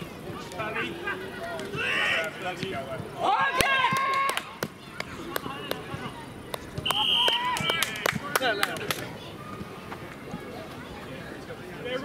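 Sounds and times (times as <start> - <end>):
players shouting: 0.4 - 8.8.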